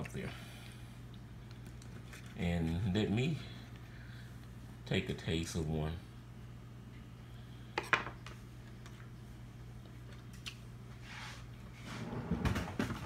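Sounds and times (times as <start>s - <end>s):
low steady hum: 0.0s - 13.0s
small handling noises: 1.0s - 4.6s.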